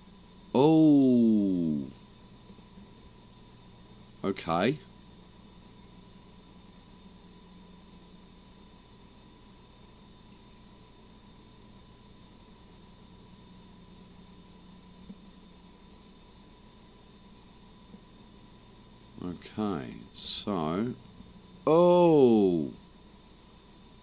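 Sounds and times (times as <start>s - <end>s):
background hum and hiss: 0.0s - 24.0s.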